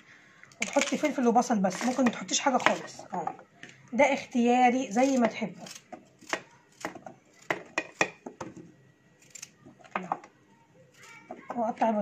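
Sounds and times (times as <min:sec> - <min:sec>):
knife slicing carrot: 0:05.0 - 0:08.2.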